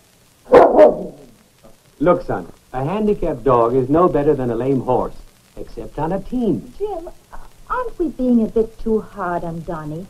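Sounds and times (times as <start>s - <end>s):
dog barking: 0.5s - 1.3s.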